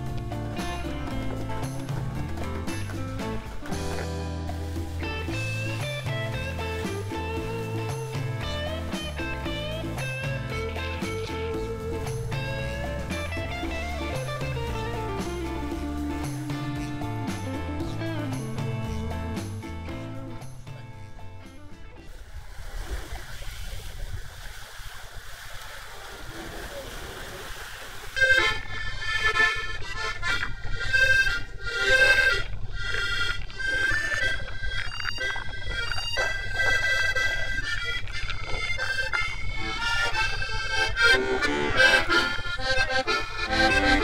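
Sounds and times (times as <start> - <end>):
accordion playing a tune: 0.0 - 22.0, 28.2 - 44.0
boat engine hum: 0.0 - 24.1, 25.1 - 44.0
passing water: 0.0 - 44.0.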